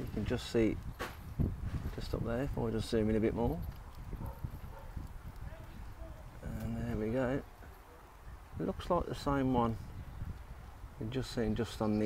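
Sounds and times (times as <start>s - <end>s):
phone microphone handling noise: 0.0s - 2.6s.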